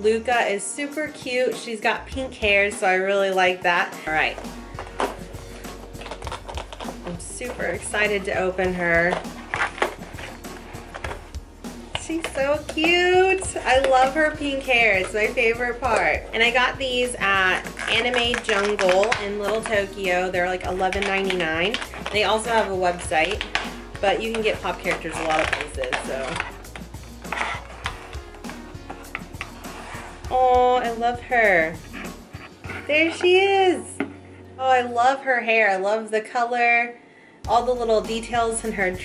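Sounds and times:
light background music: 0.0s - 39.0s
plastic packaging crackling: 4.2s - 8.3s, 9.0s - 11.3s, 17.2s - 30.1s.

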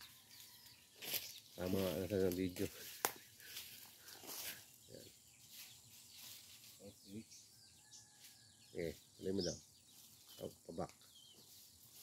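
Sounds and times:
faint outdoor ambience: 0.0s - 12.0s.

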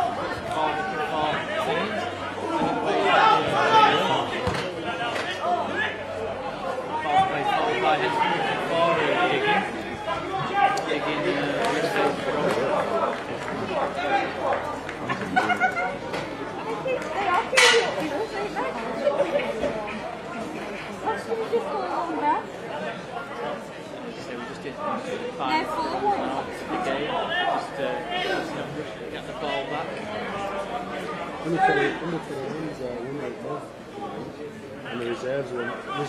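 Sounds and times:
voices chattering: 0.0s - 36.0s.

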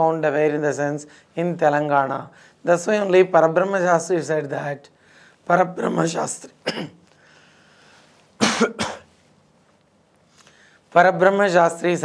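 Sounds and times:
man coughing: 6.6s - 7.0s, 8.4s - 9.1s.

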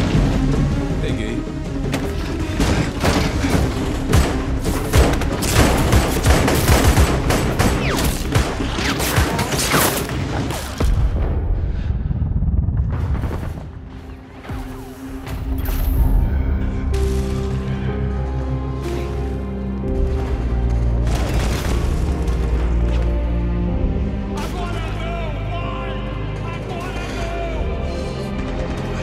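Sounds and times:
tense orchestral score: 0.0s - 29.0s.

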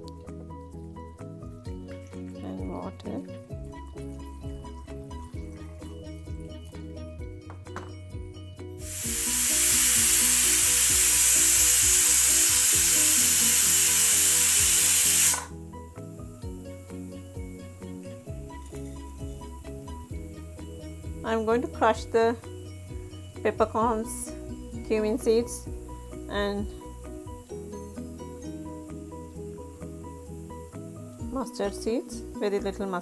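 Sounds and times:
pressure cooker steam hissing: 8.8s - 15.5s, 17.8s - 32.4s.

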